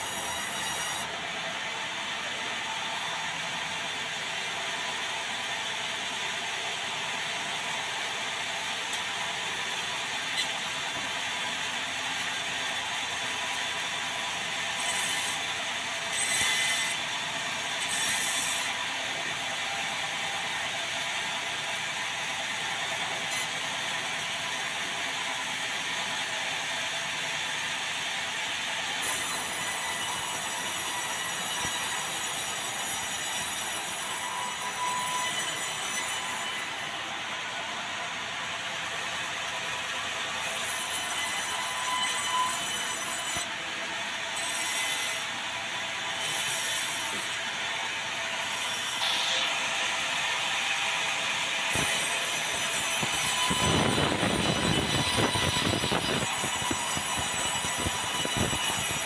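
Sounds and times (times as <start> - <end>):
band saw cutting log: 0.0 - 1.2, 8.4 - 21.1, 28.3 - 37.2, 38.8 - 59.0.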